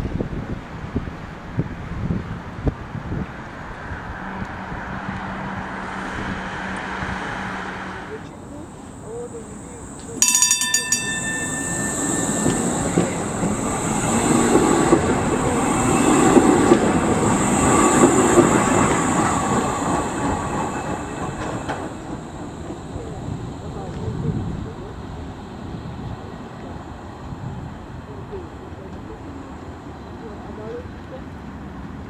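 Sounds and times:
tram passing by: 0.5 - 32.0
tram bell ringing: 8.1 - 23.7.

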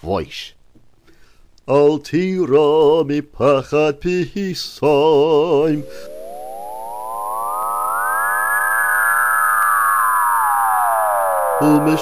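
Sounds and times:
gliding electronic tone with echoes: 5.2 - 12.0.

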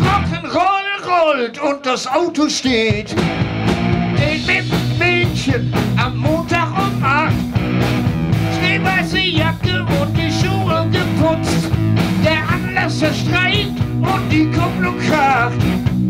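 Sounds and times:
drum kit beat: 0.0 - 0.5, 2.7 - 16.0
bass guitar line: 0.0 - 0.6, 2.8 - 16.0
electric guitar lead line: 3.0 - 16.0.

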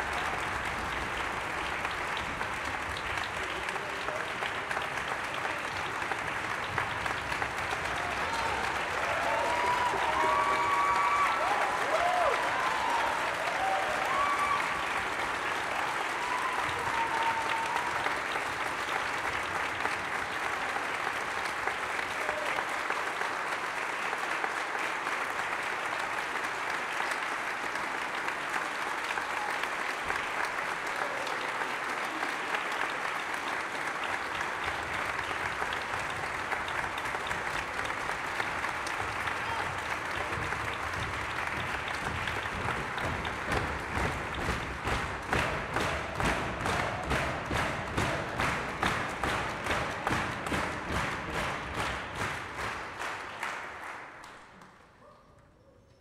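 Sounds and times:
people cheering: 0.0 - 54.7
audience applauding: 0.0 - 55.0.

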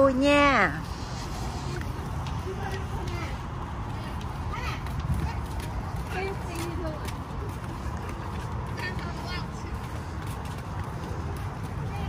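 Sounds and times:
faint voices: 0.0 - 12.0
sandal footsteps on concrete: 0.7 - 12.0.

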